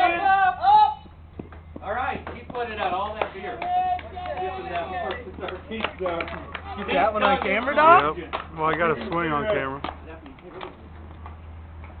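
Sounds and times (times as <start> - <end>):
low hum of outdoor ambience: 0.0 - 12.0.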